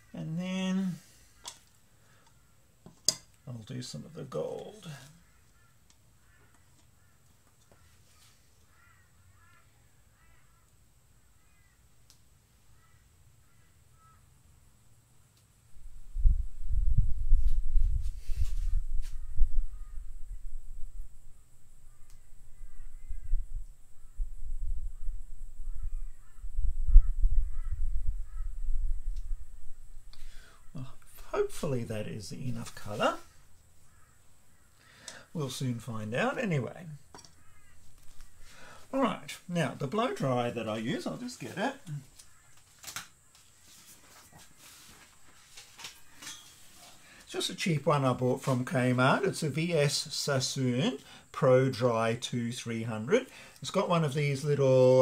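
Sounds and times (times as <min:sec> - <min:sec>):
faint bird calls: 0:04.8 - 0:12.0, 0:12.6 - 0:14.5, 0:18.6 - 0:20.6, 0:21.2 - 0:31.3, 0:33.1 - 0:35.3, 0:37.2 - 0:38.8, 0:41.9 - 0:42.8.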